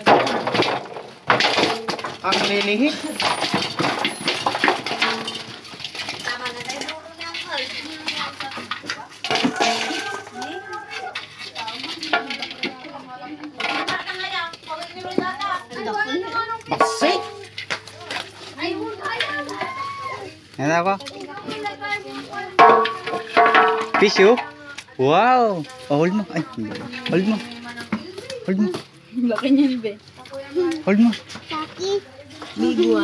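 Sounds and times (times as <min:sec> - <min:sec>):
fish clanking in metal basin: 0:00.0 - 0:20.3, 0:21.1 - 0:24.8
voices talking: 0:02.2 - 0:33.0.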